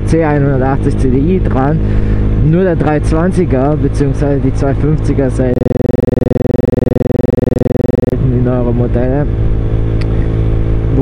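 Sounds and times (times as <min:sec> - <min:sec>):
buzzy pulsing electronic tone: 0:05.6 - 0:08.2.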